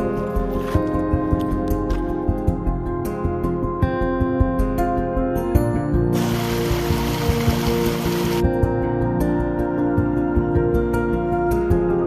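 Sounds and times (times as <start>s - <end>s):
soft new-age music: 0.0s - 12.0s
creek water rushing: 6.2s - 8.4s.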